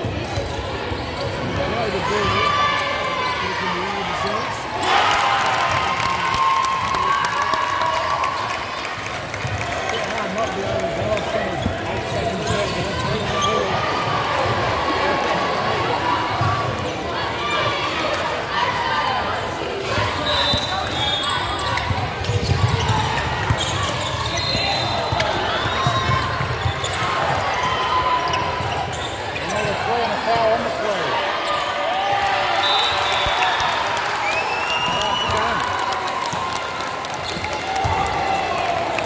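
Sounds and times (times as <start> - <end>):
basketball bouncing on court: 21.6 - 29.0.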